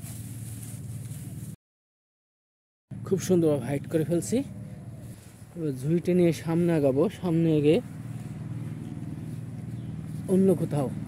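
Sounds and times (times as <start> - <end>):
low motor hum: 0.0 - 1.6, 2.9 - 11.0.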